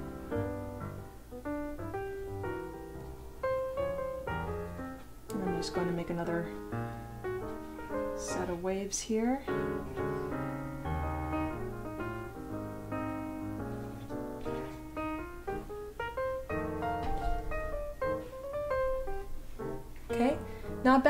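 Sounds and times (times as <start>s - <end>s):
piano music: 0.0s - 21.0s.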